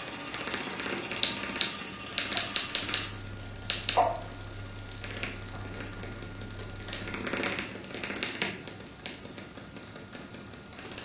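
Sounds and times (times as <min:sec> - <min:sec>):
sharp irregular clicks and ticks: 0:00.0 - 0:04.2
low steady hum: 0:00.0 - 0:11.0.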